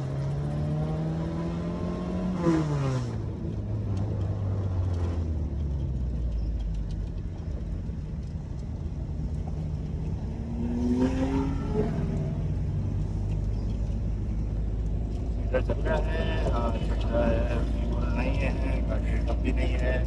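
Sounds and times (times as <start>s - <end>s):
car engine from inside cabin: 0.0s - 20.0s.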